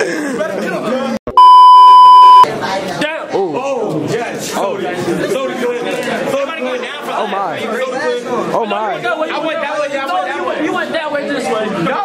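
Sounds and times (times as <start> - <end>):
censor bleep: 1.3 - 2.5.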